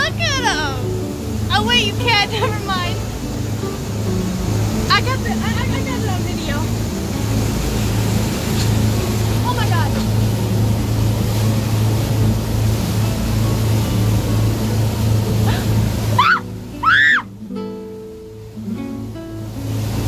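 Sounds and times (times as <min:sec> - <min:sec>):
motorboat engine drone: 0:00.0 - 0:20.0
rushing wake and wind: 0:00.0 - 0:20.0.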